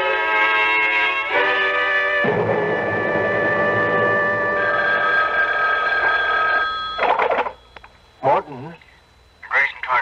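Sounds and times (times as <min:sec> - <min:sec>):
telephone bell ringing: 0:04.5 - 0:07.8.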